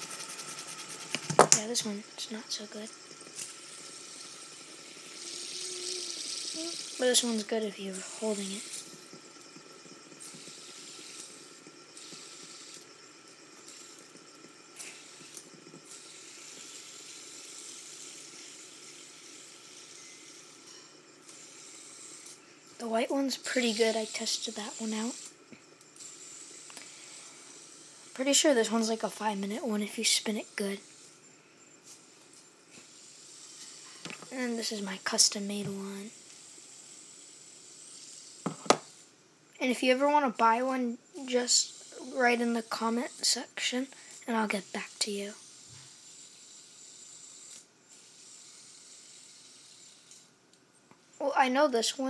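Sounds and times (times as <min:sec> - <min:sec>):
fidget spinners whirring: 0:00.0 - 0:52.0.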